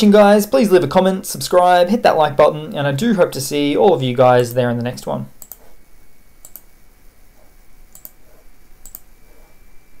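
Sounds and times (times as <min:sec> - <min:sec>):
computer mouse clicks: 0:05.4 - 0:05.8, 0:06.4 - 0:06.7, 0:07.9 - 0:09.1.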